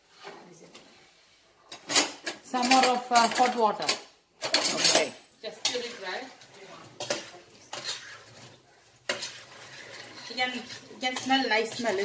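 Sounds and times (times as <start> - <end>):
spoon stirring in a pot: 0.0 - 12.0
spoon scraping metal pot: 1.7 - 12.0.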